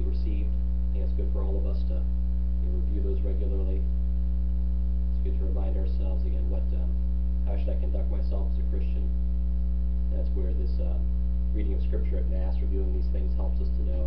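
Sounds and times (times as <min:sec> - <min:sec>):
electrical mains hum: 0:00.0 - 0:14.0.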